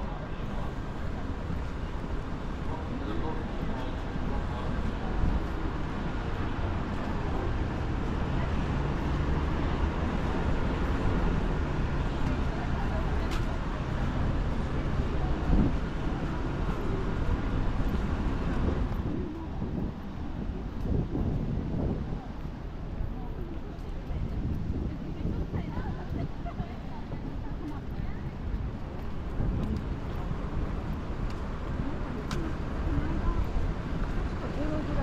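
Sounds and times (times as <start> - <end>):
city traffic rumble: 0.0 - 35.0
wind buffeting microphone: 12.7 - 35.0.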